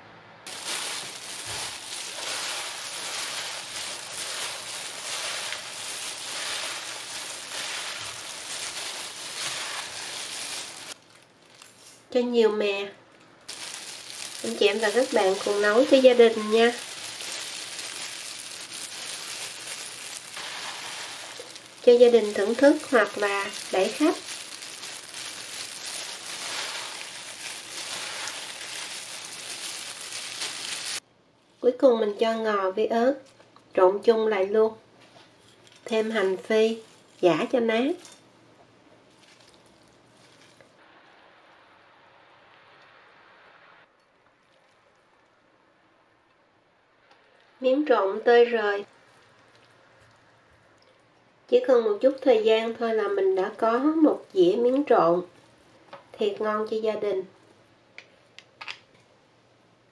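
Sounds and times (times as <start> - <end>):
plastic glove and food rustling: 0.5 - 12.2, 13.5 - 31.0, 35.5 - 38.2, 39.0 - 40.8, 48.8 - 49.8, 52.7 - 55.7.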